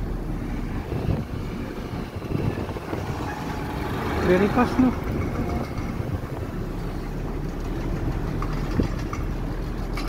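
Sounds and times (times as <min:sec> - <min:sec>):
vehicle engine and tyre rumble: 0:00.0 - 0:10.0.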